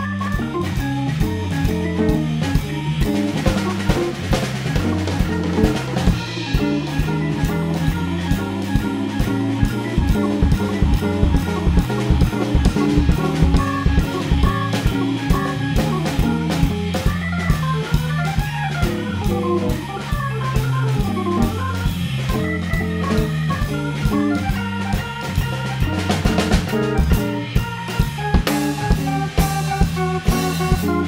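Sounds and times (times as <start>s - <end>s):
drum kit: 0.0s - 31.0s
electric guitar: 0.0s - 31.0s
electric organ: 0.0s - 31.0s.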